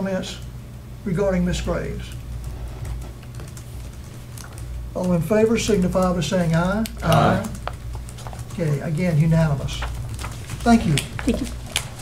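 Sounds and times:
low steady hum: 0.0s - 12.0s
laptop keyboard typing: 2.1s - 12.0s.

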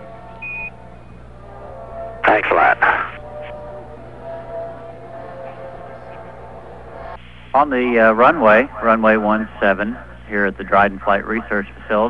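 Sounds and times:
steady radio hum: 2.2s - 3.6s, 7.3s - 12.0s.

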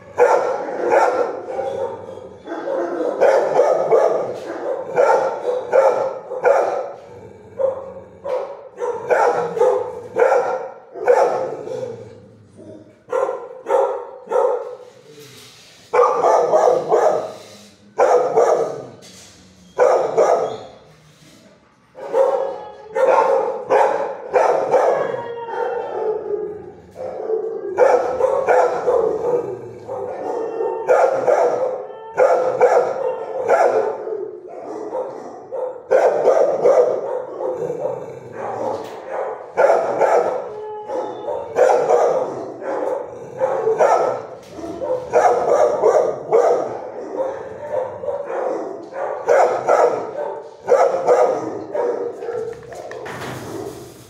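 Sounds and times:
dogs barking: 0.0s - 14.8s, 15.9s - 17.4s, 18.0s - 19.0s, 19.8s - 20.6s, 22.0s - 53.7s.

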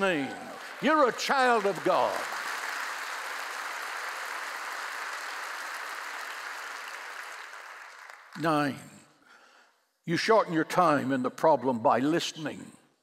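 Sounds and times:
crowd applauding: 0.0s - 8.4s.

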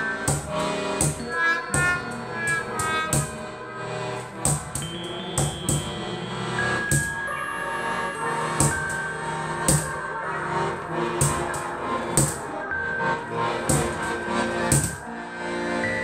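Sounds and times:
accordion sustained chords: 0.0s - 16.0s
sticks beating wooden box: 0.2s - 3.5s, 4.2s - 6.2s, 6.8s - 7.2s, 8.6s - 10.0s, 11.1s - 12.5s, 13.6s - 15.0s.

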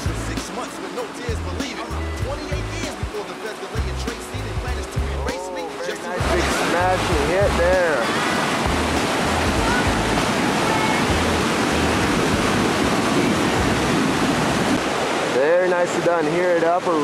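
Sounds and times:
rap backing track bass beat: 0.0s - 0.6s, 1.2s - 7.8s
whitewater rapid rushing: 0.0s - 17.0s.

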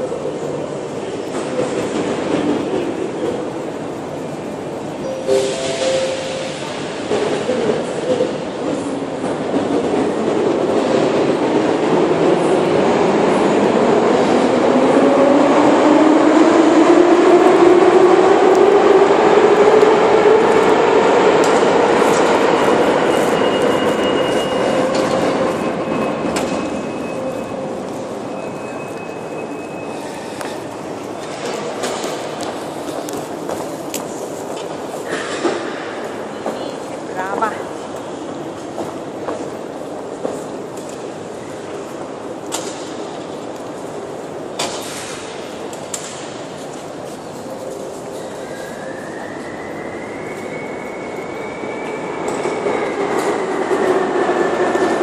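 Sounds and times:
rumble of train wheels: 0.0s - 55.0s.

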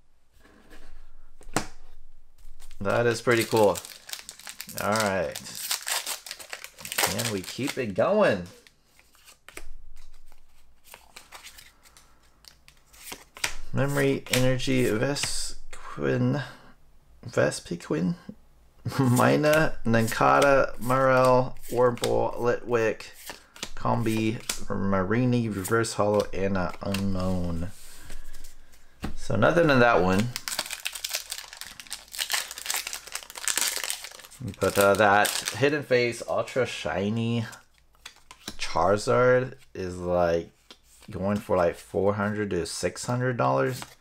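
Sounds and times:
foil wrapper crinkling: 2.6s - 9.4s, 30.1s - 35.7s
trading cards scraping and snapping: 9.0s - 14.4s.

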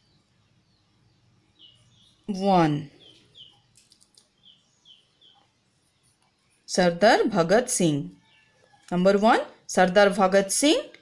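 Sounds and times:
small bird chirping: 0.0s - 7.0s, 8.0s - 9.1s.

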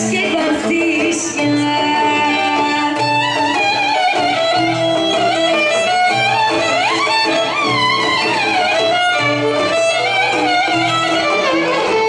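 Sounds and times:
plucked lute accompaniment: 0.0s - 12.0s
violin melody: 0.0s - 12.0s.

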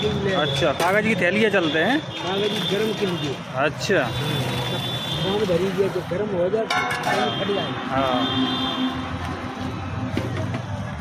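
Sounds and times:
busy street noise: 0.0s - 11.0s.

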